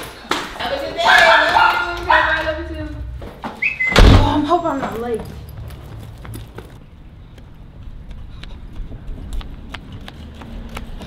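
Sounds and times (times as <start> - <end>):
footsteps on concrete: 4.6 - 11.0.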